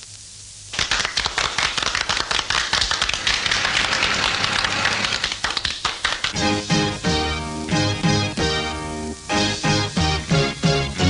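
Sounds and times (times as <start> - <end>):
audience applause: 0.7 - 6.4.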